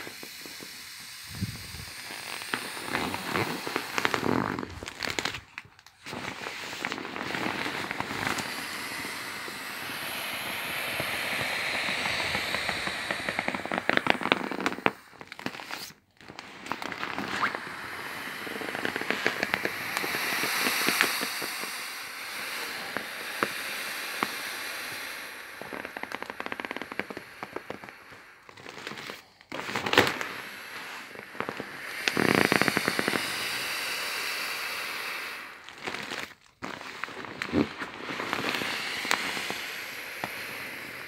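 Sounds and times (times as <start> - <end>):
air hissing out of valve: 0.0 - 41.0
vinyl crackling and crinkling: 1.3 - 8.6, 11.8 - 17.7, 18.5 - 21.4, 25.6 - 33.4, 35.6 - 39.6.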